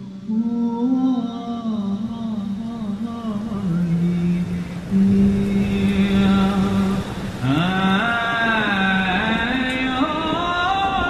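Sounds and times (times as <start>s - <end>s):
low voice chanting: 0.0s - 11.0s.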